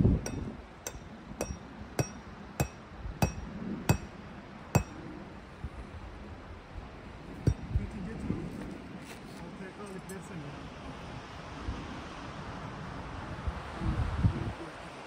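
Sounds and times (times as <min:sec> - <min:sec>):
hammer striking metal stake: 0:00.0 - 0:05.0, 0:07.4 - 0:07.8.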